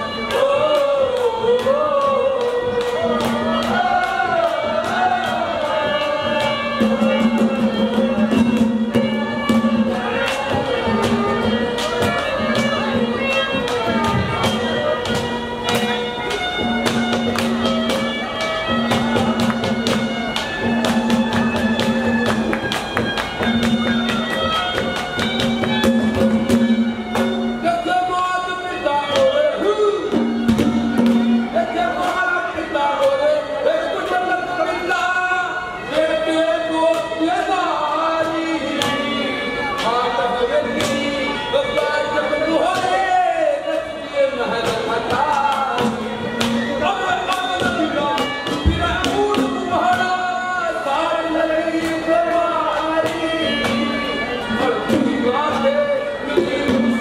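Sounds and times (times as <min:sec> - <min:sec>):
man singing: 0:00.0 - 0:14.4, 0:27.6 - 0:30.4, 0:31.5 - 0:57.0
reed instrument long notes: 0:00.0 - 0:57.0
rapid drum beats: 0:00.4 - 0:27.7, 0:30.1 - 0:32.3, 0:44.6 - 0:50.4.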